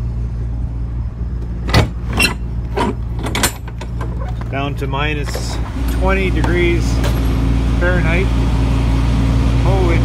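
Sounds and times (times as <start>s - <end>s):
refrigeration unit drone: 0.0s - 10.0s
metal door latch clanking: 1.7s - 4.4s.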